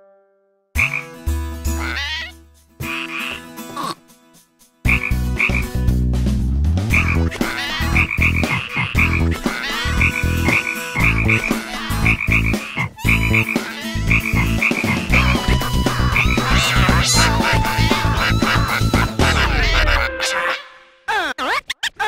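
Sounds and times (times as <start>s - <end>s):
cartoon frog croaking: 1.8s - 4.0s, 4.9s - 5.7s, 6.9s - 20.6s.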